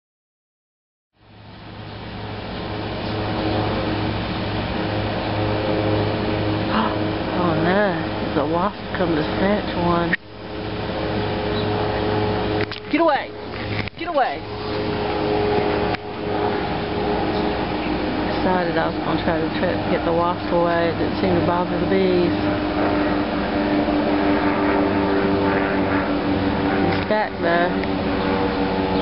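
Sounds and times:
honeybees buzzing: 1.5s - 29.0s.

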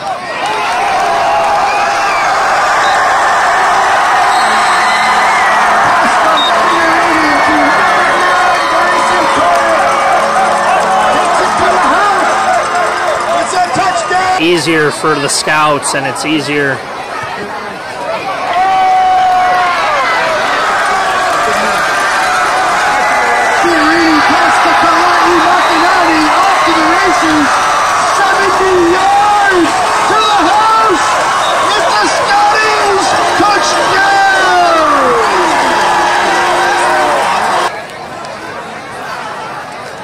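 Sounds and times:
crowd cheering and yelling: 0.0s - 40.0s.

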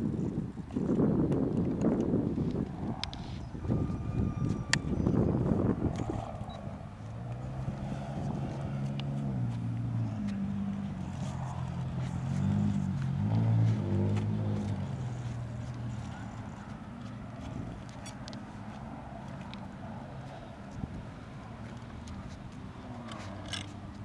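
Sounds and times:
wind buffeting microphone: 0.0s - 24.0s
low hum stepping in pitch: 2.6s - 17.7s.

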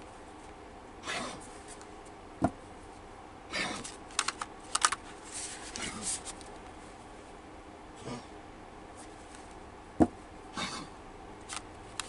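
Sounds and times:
cards sliding on cloth: 5.0s - 6.4s.

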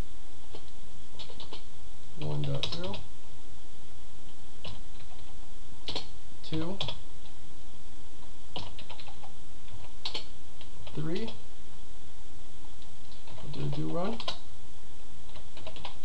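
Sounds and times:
computer keyboard typing: 0.5s - 1.6s, 2.2s - 3.0s, 4.6s - 5.3s, 5.9s - 6.1s, 6.7s - 7.0s, 8.5s - 11.4s, 13.1s - 14.4s, 15.3s - 16.0s.

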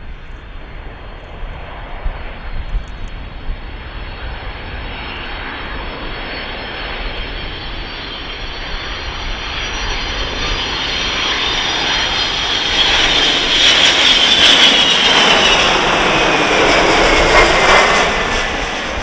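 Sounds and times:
high jet whine: 0.0s - 19.0s
jet engines on approach: 0.0s - 19.0s.

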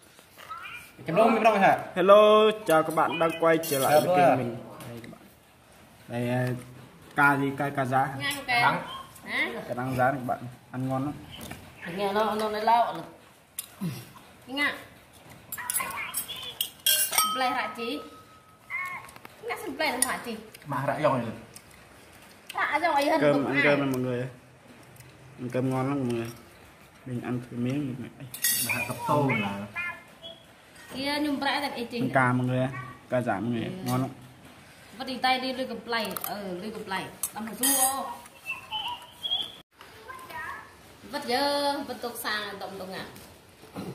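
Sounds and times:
spoon clinking on pot and bowls: 15.5s - 18.5s, 28.3s - 28.9s, 37.2s - 38.1s.

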